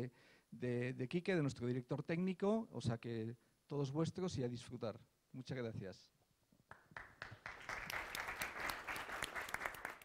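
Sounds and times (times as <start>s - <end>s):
audience applauding: 6.7s - 10.0s.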